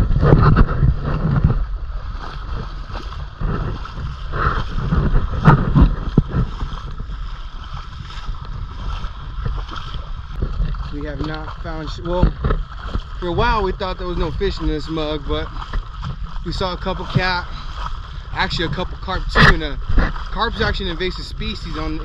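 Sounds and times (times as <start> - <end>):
wading through shallow water: 0.0 - 22.0
wind rumbling on microphone: 0.0 - 22.0.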